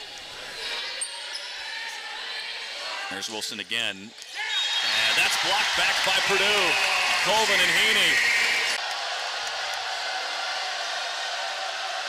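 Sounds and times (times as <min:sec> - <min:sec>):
crowd noise in a gym: 0:00.0 - 0:12.0.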